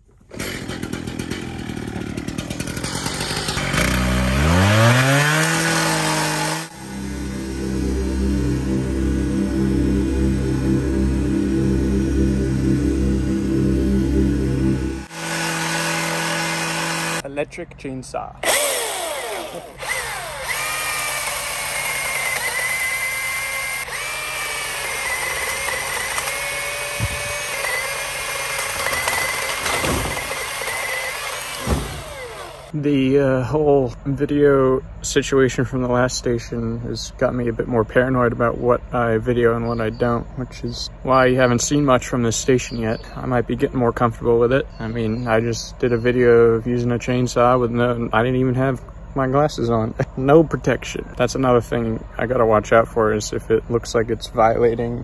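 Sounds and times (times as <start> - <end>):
cut-off saw cutting steel: 0.3 - 11.0, 15.0 - 17.2, 18.4 - 32.8
tree limb thudding down: 28.7 - 30.5, 31.5 - 32.2.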